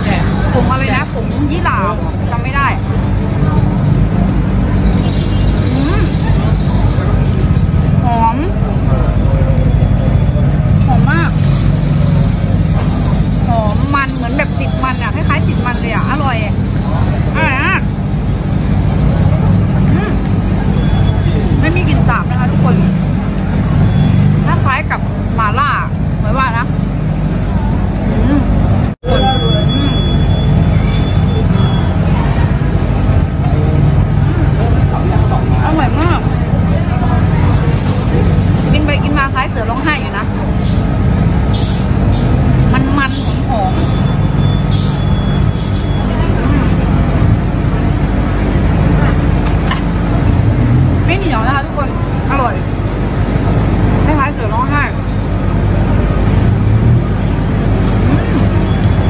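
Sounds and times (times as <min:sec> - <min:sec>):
people talking nearby: 0:00.0 - 0:41.5, 0:42.1 - 0:59.0
road traffic rumble: 0:00.0 - 0:59.0.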